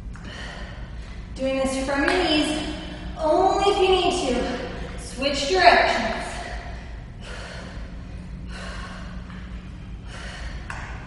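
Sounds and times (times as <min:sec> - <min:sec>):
woman breathing hard: 0:00.0 - 0:01.4, 0:04.3 - 0:05.1, 0:06.2 - 0:11.0
steady low hum: 0:00.0 - 0:11.0.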